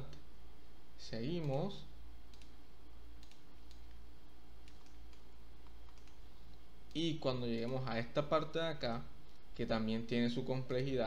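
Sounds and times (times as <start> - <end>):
low electrical hum: 0.0 - 11.0
computer mouse clicks: 2.3 - 2.6, 3.2 - 4.0, 4.6 - 7.0.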